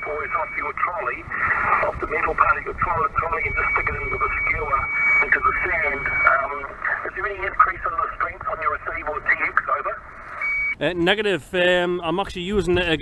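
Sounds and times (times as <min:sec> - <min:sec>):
man's voice over radio: 0:00.0 - 0:10.0.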